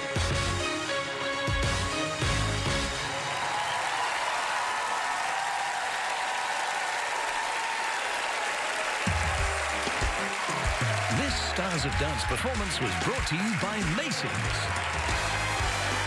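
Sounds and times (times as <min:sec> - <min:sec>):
bass-heavy music with thumping beats: 0:00.0 - 0:00.8, 0:01.5 - 0:03.0, 0:14.4 - 0:16.0
audience applauding: 0:02.0 - 0:16.0.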